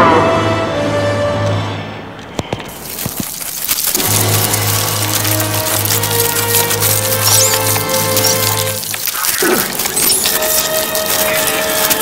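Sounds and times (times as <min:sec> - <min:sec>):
bugs scuttling with tiny clicks: 0:02.3 - 0:12.0.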